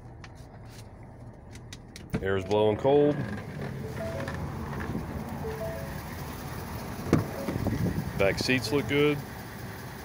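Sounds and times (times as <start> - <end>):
air conditioning blowing: 0.0 - 9.4
diesel engine idling: 2.0 - 10.0.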